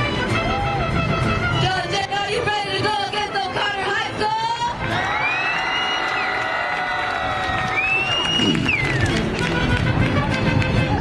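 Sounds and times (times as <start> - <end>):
bass guitar: 0.0 - 5.2, 7.4 - 11.0
bowed violins: 0.0 - 5.2, 8.9 - 11.0
strummed guitars: 0.0 - 5.2, 8.2 - 11.0
trumpets: 8.0 - 11.0.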